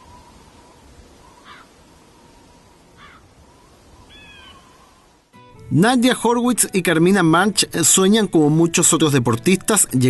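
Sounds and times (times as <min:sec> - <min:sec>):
wind and sea rushing: 0:00.0 - 0:05.4
gulls calling: 0:04.0 - 0:05.0.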